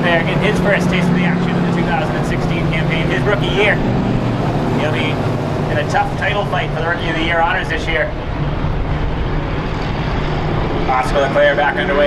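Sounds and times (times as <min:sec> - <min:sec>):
stock car engines running low speed: 0:00.0 - 0:12.0.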